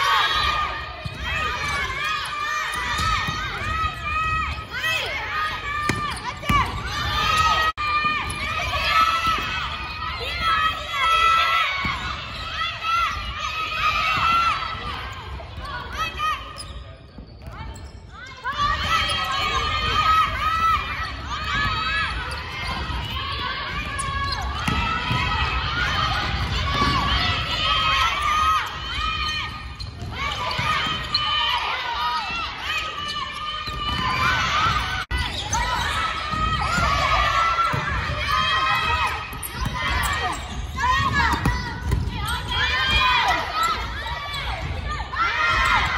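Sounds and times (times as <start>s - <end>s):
volleyballs struck and bouncing: 1.0s - 10.4s, 18.6s - 28.8s, 33.7s - 44.9s
sneaker squeaks: 11.2s - 25.2s, 28.0s - 44.9s
players calling out: 17.4s - 45.9s.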